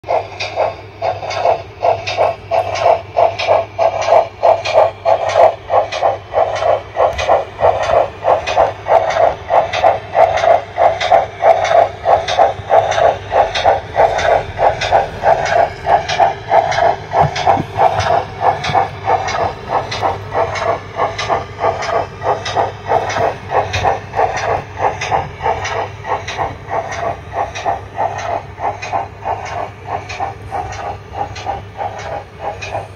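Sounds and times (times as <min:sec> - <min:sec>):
model train steam chuffs: 0:00.0 - 0:32.9
low hum: 0:11.6 - 0:27.2.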